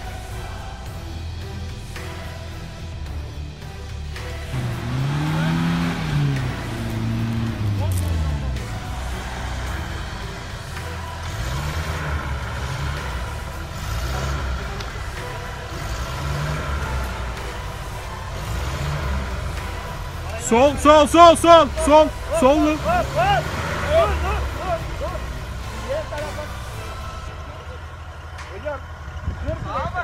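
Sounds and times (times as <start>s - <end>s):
off-road engine revving: 0.0s - 30.0s.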